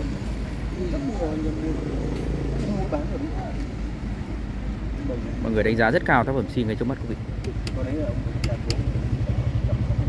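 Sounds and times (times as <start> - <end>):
steady low rumble: 0.0 - 5.2
people talking: 0.7 - 3.9.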